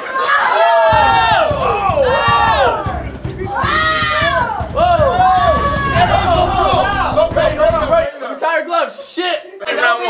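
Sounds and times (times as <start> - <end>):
onlookers shouting and cheering: 0.0 - 8.1.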